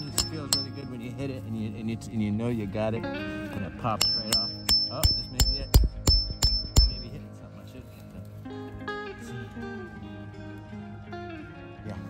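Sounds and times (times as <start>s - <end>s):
chisel striking metallic blows: 0.0s - 1.0s, 4.0s - 7.2s
acoustic guitar music: 0.0s - 7.4s, 8.2s - 12.0s.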